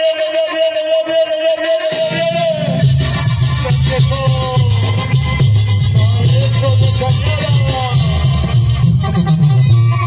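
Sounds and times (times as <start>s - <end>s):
brass band playing: 1.7s - 10.0s.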